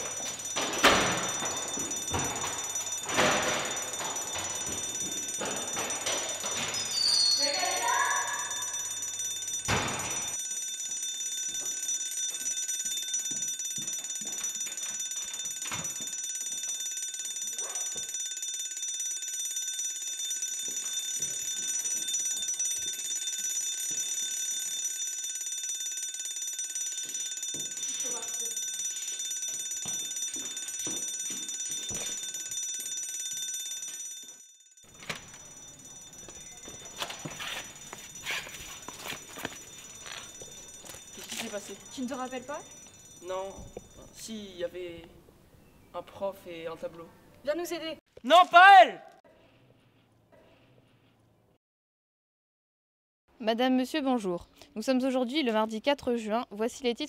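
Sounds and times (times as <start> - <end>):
school alarm ringing: 0.0 - 44.8.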